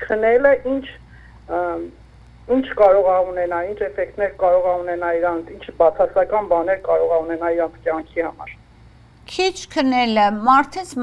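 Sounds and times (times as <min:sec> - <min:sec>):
woman talking: 0:00.0 - 0:08.6, 0:09.3 - 0:11.0.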